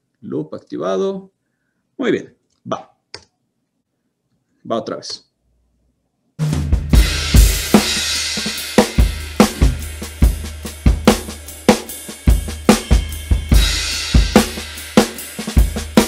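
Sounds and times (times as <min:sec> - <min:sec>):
drum kit beat: 0:06.4 - 0:16.0.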